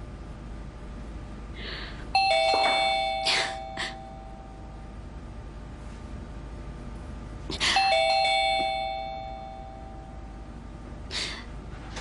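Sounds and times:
two-tone doorbell chime: 0:02.1 - 0:04.8, 0:07.6 - 0:10.5.

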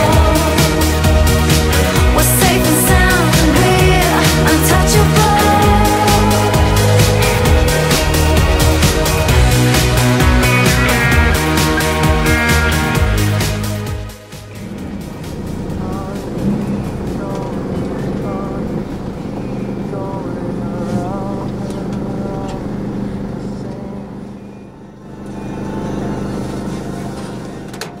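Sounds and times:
road noise: 0:00.0 - 0:28.0
van engine hum: 0:00.0 - 0:28.0
faint wavering voices: 0:14.6 - 0:27.8.

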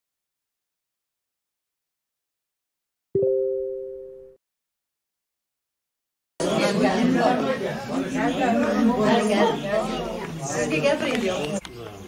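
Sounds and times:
people talking over one another: 0:06.4 - 0:12.0.

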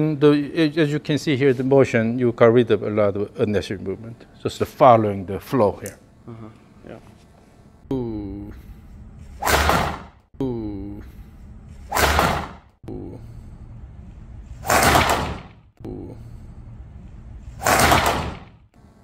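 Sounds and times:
golf club whoosh and strike: 0:09.4 - 0:10.2, 0:11.9 - 0:12.7.

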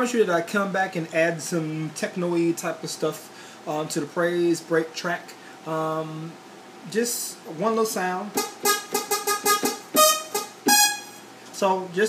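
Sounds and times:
plucky synth notes: 0:08.4 - 0:11.2.

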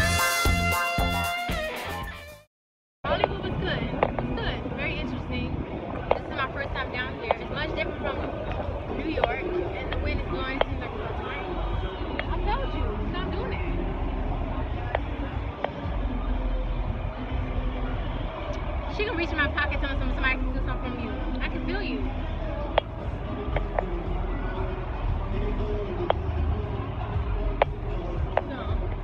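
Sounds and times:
passers-by talking: 0:03.1 - 0:29.0.

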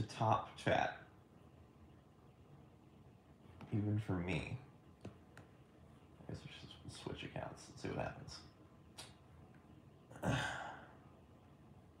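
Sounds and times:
man sighing: 0:10.2 - 0:11.0.

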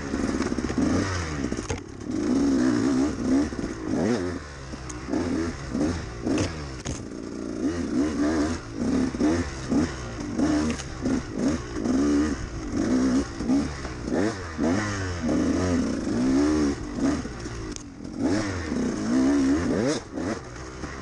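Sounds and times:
two-stroke engine revving: 0:00.0 - 0:21.0.

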